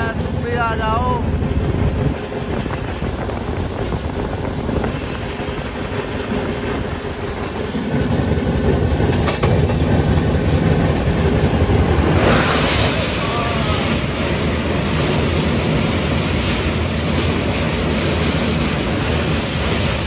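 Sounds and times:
train wheels on track: 0.0s - 20.0s.

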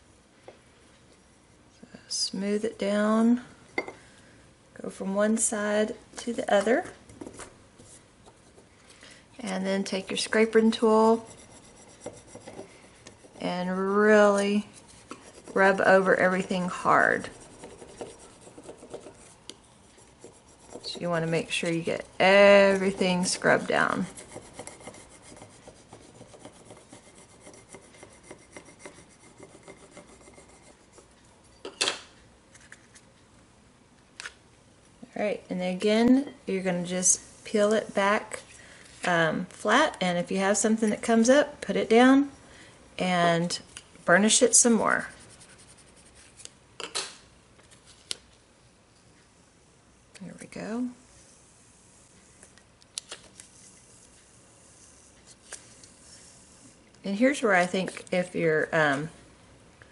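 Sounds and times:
plastic scraper rubbing on mug: 9.8s - 30.8s.

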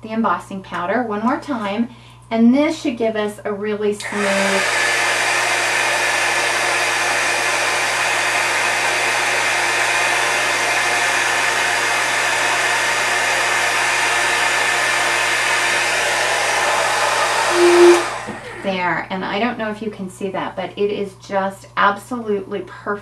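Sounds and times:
heat gun blowing: 4.0s - 18.7s.

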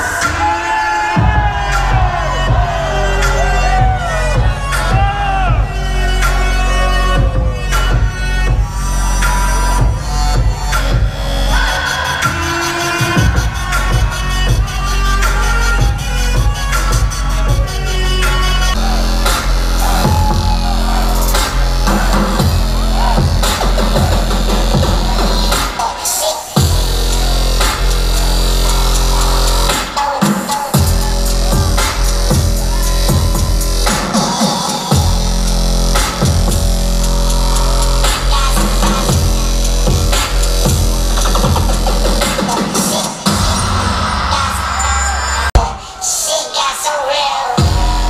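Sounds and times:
heavy sub-bass: 0.0s - 45.8s, 47.6s - 48.0s
loud electronic bass music: 0.0s - 45.8s, 47.6s - 48.0s
bass and drum hits: 1.2s - 11.6s, 13.1s - 26.0s, 26.6s - 30.0s, 30.7s - 45.7s, 47.6s - 48.0s.

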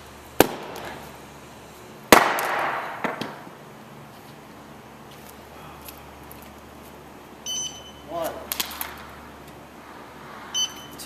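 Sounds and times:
short high beep: 7.4s - 8.1s, 10.6s - 11.0s.

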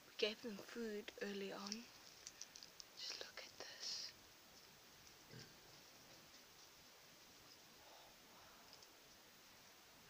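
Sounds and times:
person whispering: 3.0s - 4.2s.

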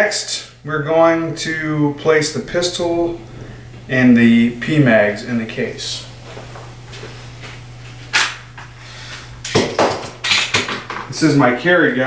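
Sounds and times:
steady low hum: 0.0s - 12.0s
objects knocking on workbench: 9.5s - 11.1s.

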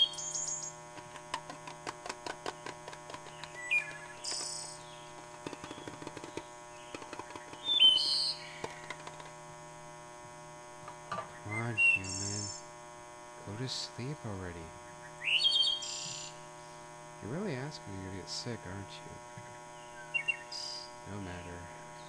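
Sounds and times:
steady low hum: 0.0s - 22.0s
quick taps on a soda can: 5.2s - 7.7s.

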